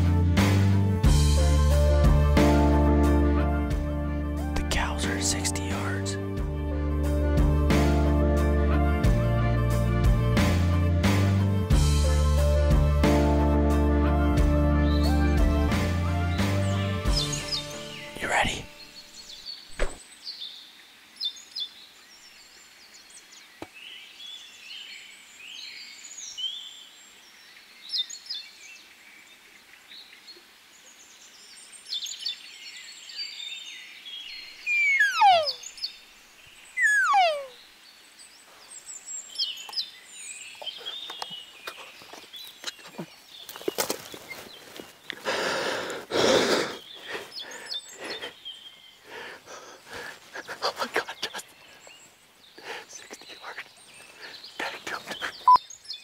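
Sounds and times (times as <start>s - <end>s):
faint bird chirps: 25.6s - 45.1s, 46.7s - 56.0s
elk calls sliding down in pitch: 34.7s - 35.6s, 36.8s - 37.6s
close rustling: 40.9s - 45.3s.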